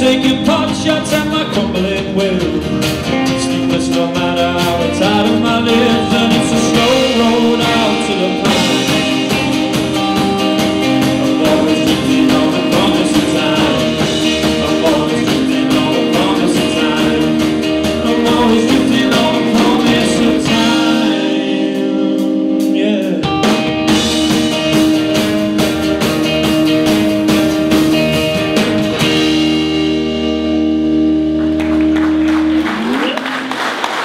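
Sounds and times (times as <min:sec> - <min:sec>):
live rock band playing: 0:00.0 - 0:34.0.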